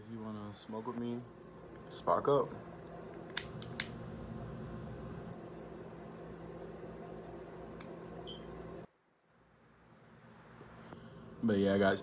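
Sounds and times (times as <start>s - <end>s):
lighter flame humming: 2.8s - 5.3s, 7.6s - 8.9s
lighter clicking: 3.3s - 4.0s.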